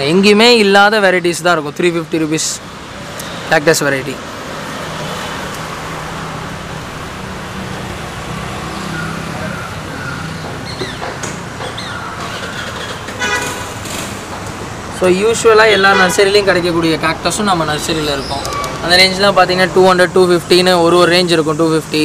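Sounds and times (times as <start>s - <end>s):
road traffic engine hum: 0.0s - 22.0s
vehicle horn tooting: 13.2s - 13.8s, 15.7s - 16.5s.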